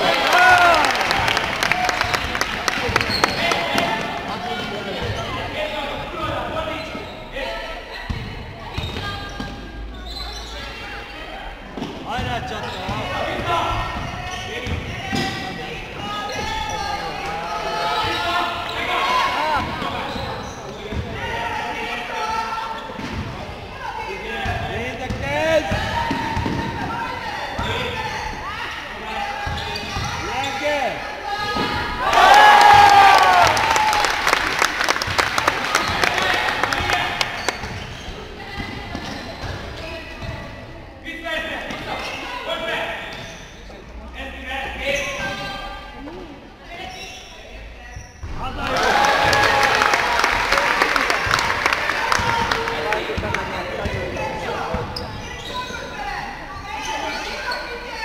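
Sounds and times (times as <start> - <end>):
voices calling out in hall: 0.0 - 58.0.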